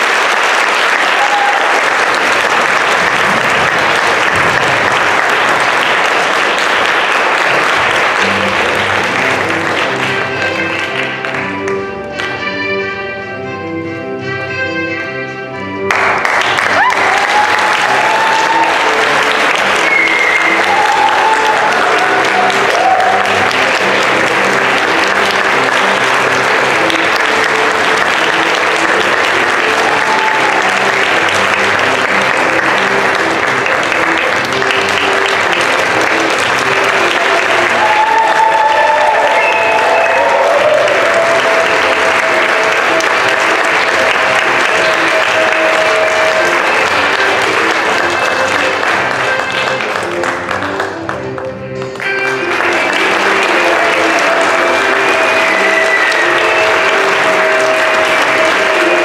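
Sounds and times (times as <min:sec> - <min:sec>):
audience applauding: 0:00.0 - 0:12.8, 0:15.8 - 0:59.0
instrumental music: 0:02.6 - 0:59.0.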